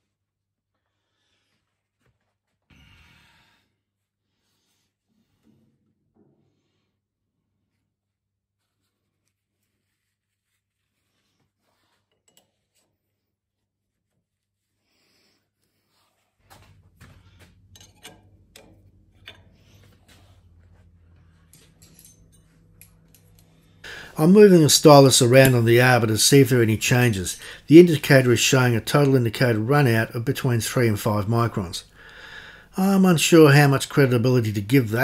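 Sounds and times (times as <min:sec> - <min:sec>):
low steady hum: 0:16.5 - 0:35.0
metal tooling clicks and knocks: 0:17.7 - 0:19.8, 0:21.4 - 0:23.7.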